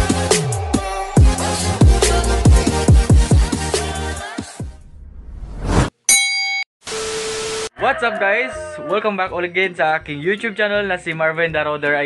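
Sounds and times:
bright metallic ding: 6.1 - 6.7
man talking: 7.8 - 12.0.

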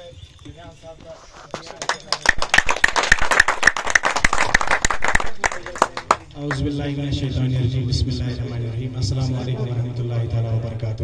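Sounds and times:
people applauding: 1.5 - 6.6.

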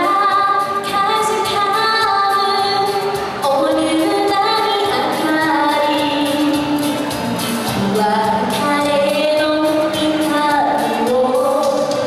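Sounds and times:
instrumental accompaniment with beat: 0.0 - 12.0
woman singing: 0.0 - 12.0.

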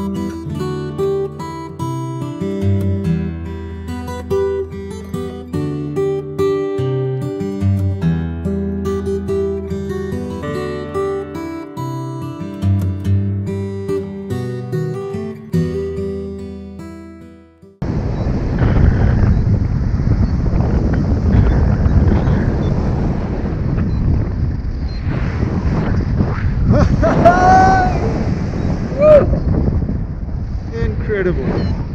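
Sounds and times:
guitar music: 0.0 - 17.8
wind rushing over microphone: 17.8 - 31.9.

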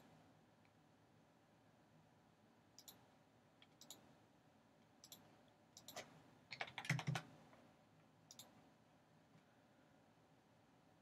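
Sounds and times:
faint computer mouse clicks: 2.8 - 3.0, 3.6 - 4.1, 5.0 - 6.1, 8.3 - 8.6
keyboard keystrokes: 5.8 - 7.3.

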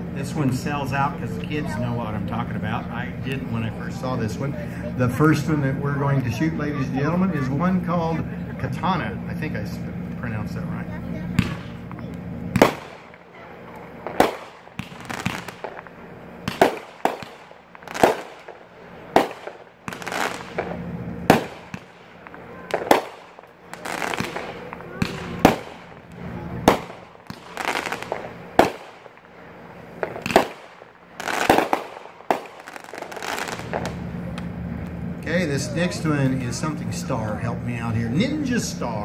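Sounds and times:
firework reports echoing: 0.0 - 39.0.

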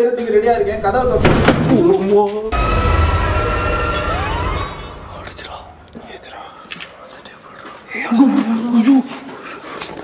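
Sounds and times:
hushed whispering voices: 5.4 - 9.2.

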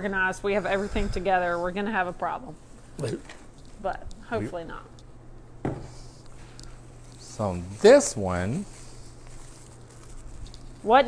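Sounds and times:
faint low hum: 0.0 - 11.0
person speaking: 3.0 - 4.8.

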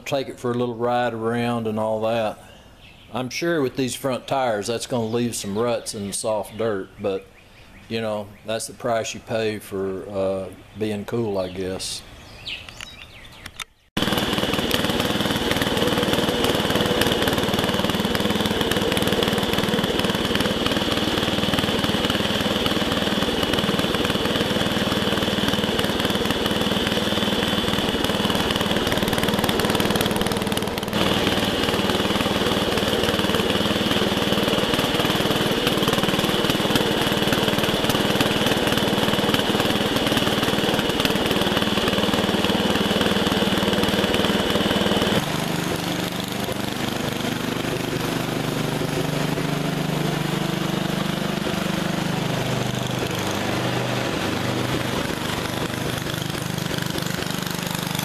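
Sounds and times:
garden tractor engine running: 0.0 - 2.4, 3.1 - 7.2, 8.0 - 58.0.

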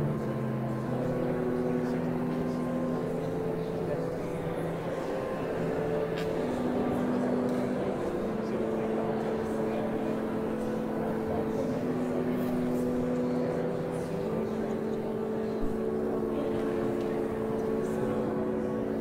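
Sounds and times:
organ playing sustained chords: 0.0 - 19.0.

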